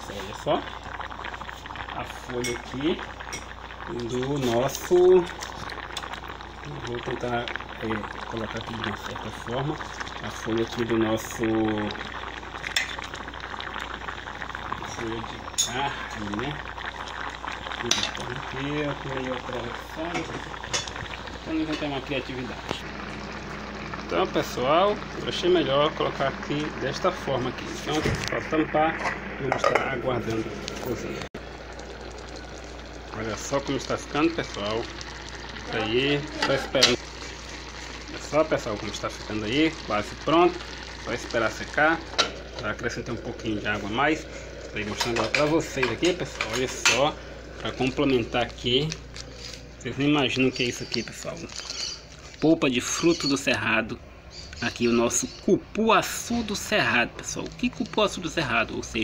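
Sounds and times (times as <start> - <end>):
rice boiling in pot: 0.0 - 59.0
low hum: 19.8 - 51.2
man speaking: 24.0 - 31.2, 35.6 - 37.0, 38.2 - 49.0, 49.8 - 51.6, 52.4 - 54.0, 54.6 - 59.0.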